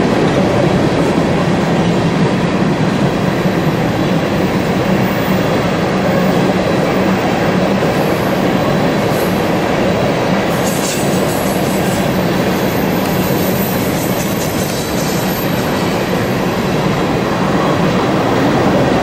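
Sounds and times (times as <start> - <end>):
train wheels rolling on rail: 0.0 - 19.0.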